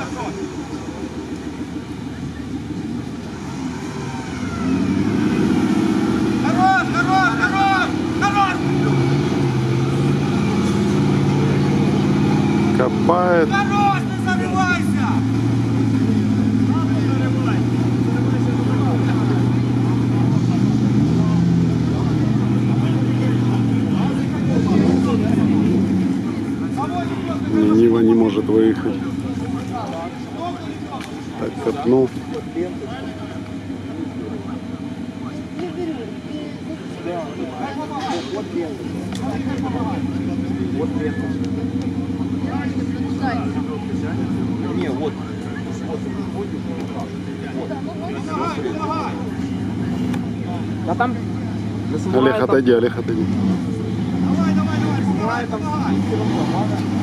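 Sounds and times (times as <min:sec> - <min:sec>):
vehicle engine revving under load: 0:00.0 - 0:57.0
vehicle moving through water: 0:00.0 - 0:57.0.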